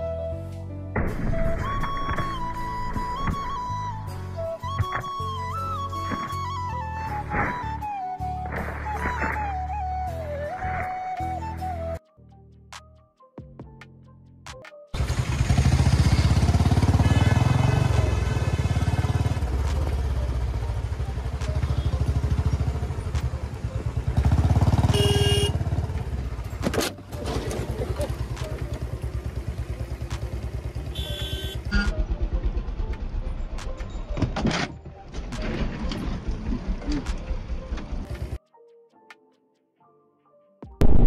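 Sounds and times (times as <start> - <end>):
motorcycle engine running: 15.0 - 33.6
car horns honking: 24.8 - 25.7, 30.8 - 32.0.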